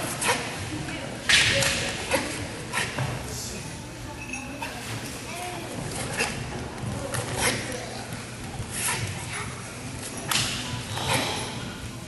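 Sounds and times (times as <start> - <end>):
murmur of gymnasium: 0.0 - 12.0.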